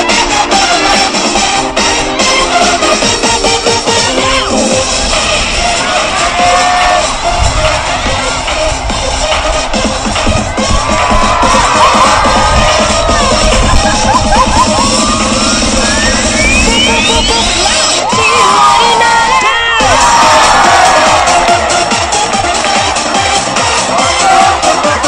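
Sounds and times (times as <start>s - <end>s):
rising sweep: 0.0s - 18.8s
dance music over loudspeakers: 0.0s - 25.0s
crowd cheering and screaming: 4.3s - 25.0s.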